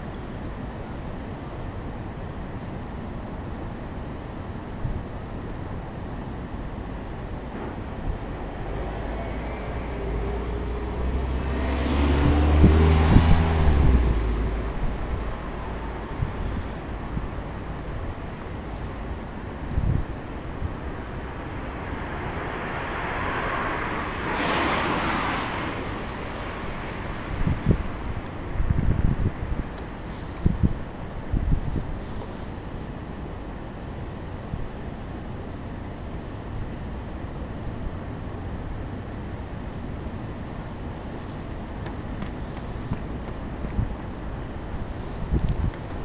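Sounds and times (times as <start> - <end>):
tyre road noise: 0.0 - 46.0
vehicle engine hum: 0.0 - 46.0
wind on microphone: 7.7 - 32.4, 41.1 - 46.0.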